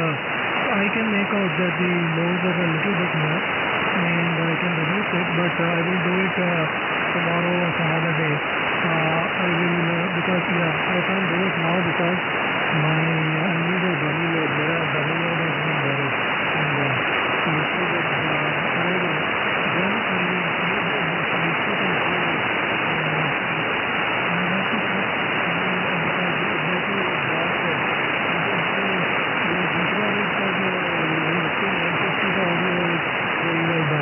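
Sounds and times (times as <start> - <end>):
radio static hiss: 0.0 - 34.0
weak radio voice talking: 0.0 - 34.0.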